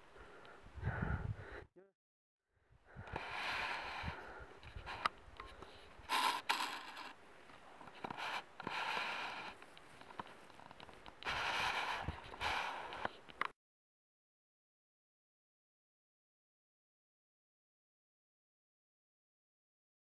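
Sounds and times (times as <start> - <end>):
rustling scraping noise: 4.7 - 13.4.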